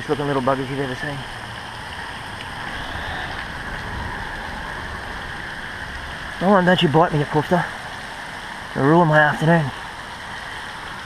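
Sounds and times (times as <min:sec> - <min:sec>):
heavy rain falling: 0:00.0 - 0:11.0
low rumble: 0:01.2 - 0:08.8.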